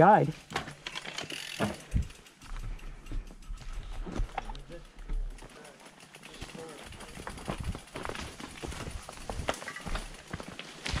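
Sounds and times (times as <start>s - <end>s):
bike clicks and knocks: 0.4s - 11.0s.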